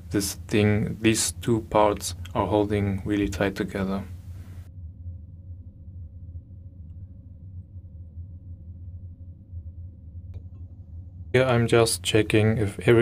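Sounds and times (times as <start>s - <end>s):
faint steady tone: 0.0s - 13.0s
low steady hum: 0.0s - 13.0s.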